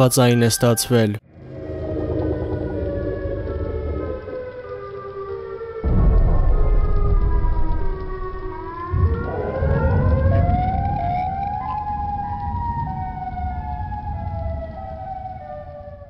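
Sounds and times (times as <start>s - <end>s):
sirens wailing: 0.0s - 16.0s
loud low rumble: 5.8s - 14.7s.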